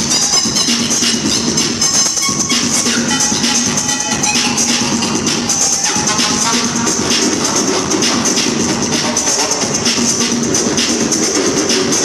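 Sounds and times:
techno music over sound system: 0.0 - 12.0.

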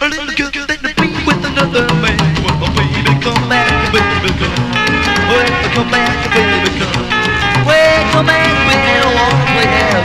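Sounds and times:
rockabilly band playing: 0.8 - 10.0
steady drum beat: 1.0 - 10.0.

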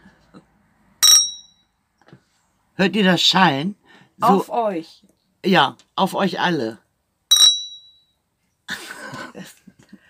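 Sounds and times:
wine glasses clinking: 1.0 - 1.6, 7.3 - 8.0.

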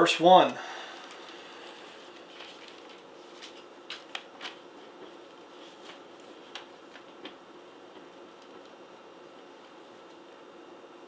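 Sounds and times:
pages rustling: 1.0 - 7.4.

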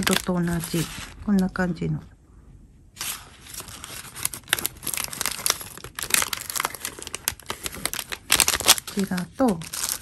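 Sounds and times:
paper bag crinkling: 0.0 - 1.2, 3.0 - 10.0.

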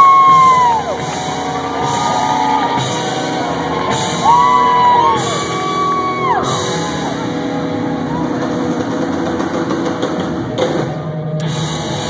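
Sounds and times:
live rock band droning: 0.0 - 12.0.

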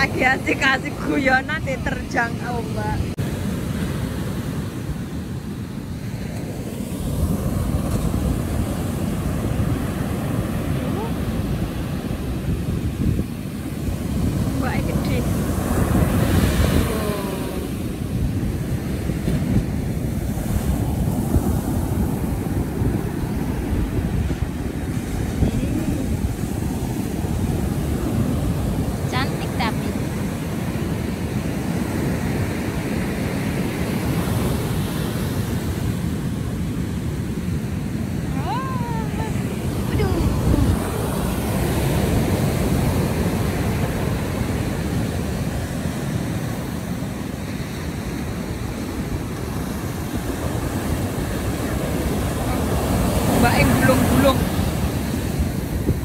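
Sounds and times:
ocean surf breaking: 0.0 - 56.0
wind buffeting microphone: 0.0 - 56.0.

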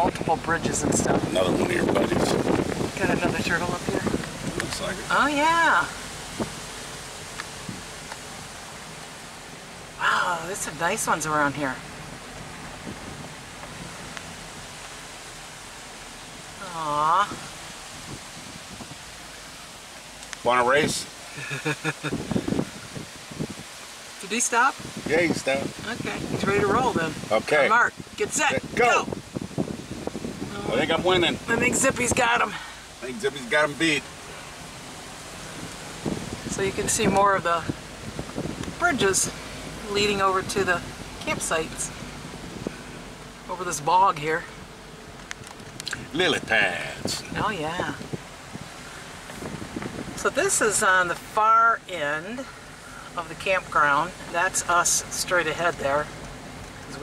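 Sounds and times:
car rolling on gravel: 0.0 - 57.0.

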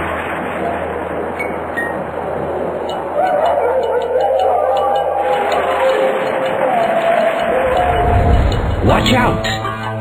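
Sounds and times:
steady rushing background noise: 0.0 - 10.0.

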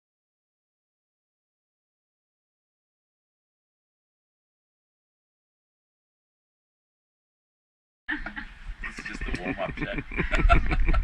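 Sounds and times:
people laughing: 8.1 - 11.0.

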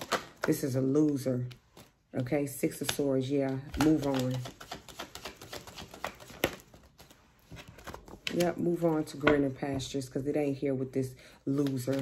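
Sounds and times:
cards being shuffled: 2.7 - 9.3, 11.5 - 12.0.

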